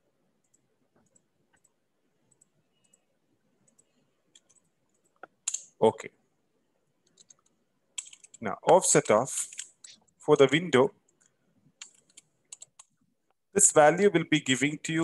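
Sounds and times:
computer mouse clicks: 0.4s - 5.7s, 7.0s - 10.2s, 11.1s - 13.0s.

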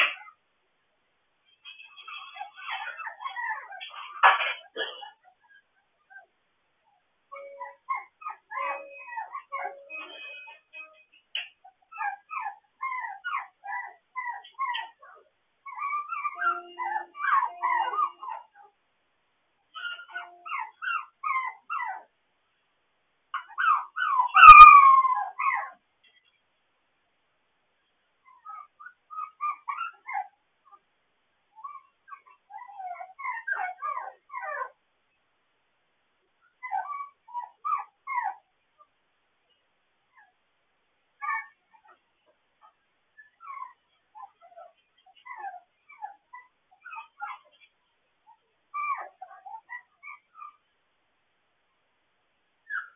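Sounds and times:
puppies whining and yipping: 1.6s - 4.3s, 7.3s - 18.8s, 19.7s - 22.1s, 23.4s - 25.8s, 28.3s - 30.8s, 31.5s - 34.8s, 36.4s - 38.9s, 41.2s - 42.0s, 42.6s - 50.7s, 52.6s - 52.9s.

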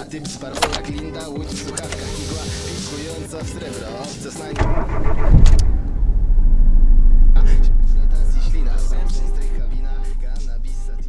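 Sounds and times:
loud deep rumble: 4.6s - 11.0s.

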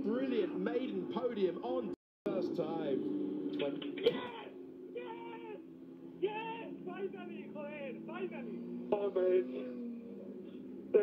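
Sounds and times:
steady low drone: 2.3s - 5.0s
man shouting over radio: 4.0s - 9.4s.

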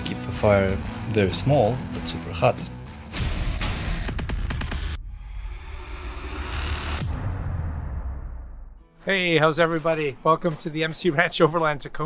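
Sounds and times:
low rumble: 5.0s - 8.8s.

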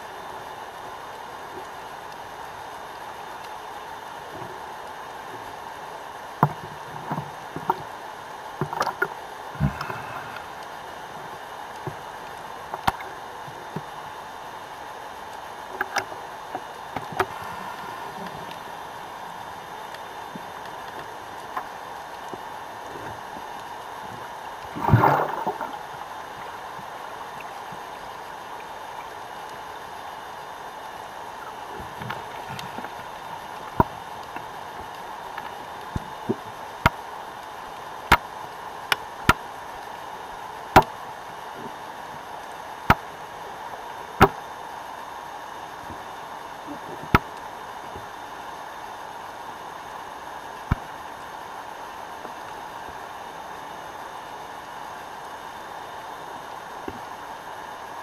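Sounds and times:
gurgling water rush: 0.0s - 58.0s
underwater clicks and knocks: 6.4s - 7.9s, 8.6s - 10.1s, 12.7s - 13.9s
underwater hiss: 8.7s - 12.0s, 17.0s - 20.4s, 24.7s - 26.6s.

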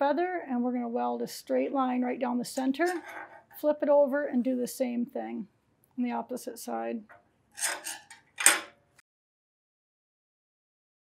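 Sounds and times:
metallic clank on steel table: 7.6s - 8.8s.

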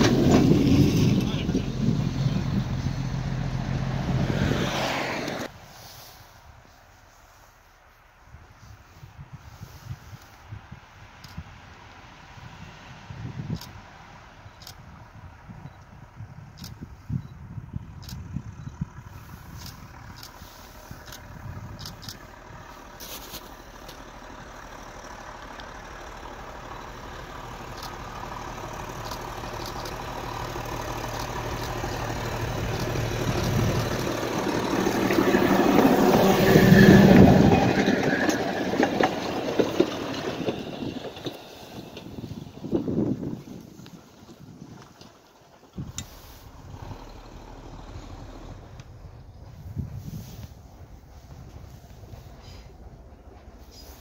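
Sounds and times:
rail motor car engine passing: 0.0s - 54.0s.

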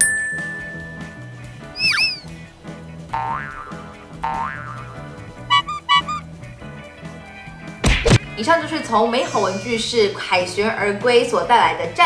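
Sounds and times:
light background music: 0.0s - 12.0s
whistle-like swoop effect: 1.8s - 2.3s.

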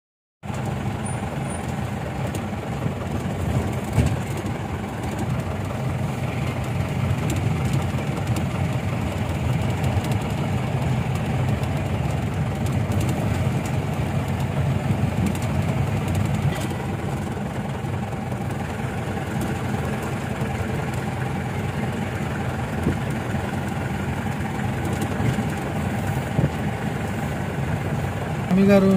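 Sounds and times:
engine and road rumble inside vehicle: 0.4s - 28.9s.

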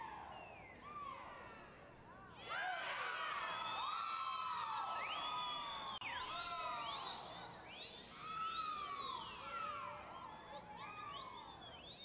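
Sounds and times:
crowd whistling: 5.0s - 9.4s.

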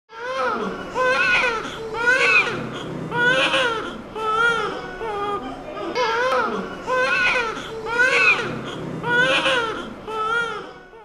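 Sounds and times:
newborn baby crying: 0.1s - 11.0s.

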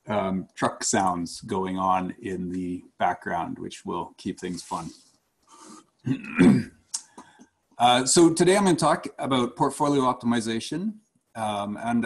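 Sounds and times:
man clearing his throat: 6.1s - 6.7s.

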